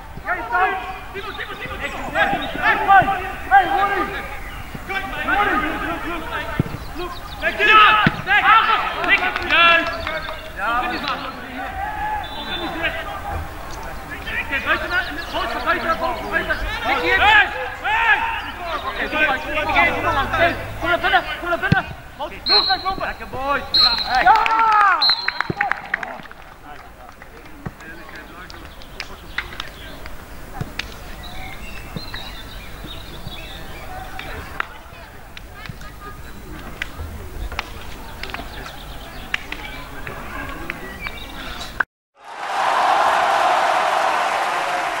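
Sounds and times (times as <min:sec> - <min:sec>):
people calling out: 0:00.0 - 0:26.4
football kick thud: 0:06.5 - 0:06.9, 0:07.9 - 0:08.4
high whistle-like tone: 0:23.7 - 0:24.2, 0:25.0 - 0:25.6.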